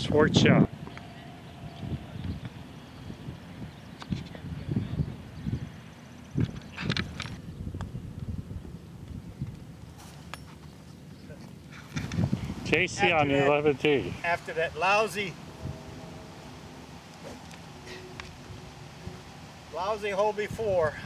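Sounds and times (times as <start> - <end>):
low outdoor rumble: 0.0 - 21.0
golf clubs striking balls: 15.4 - 19.8.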